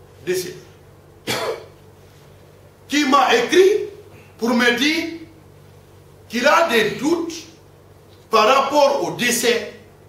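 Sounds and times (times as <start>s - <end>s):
man clearing throat: 1.2s - 1.8s.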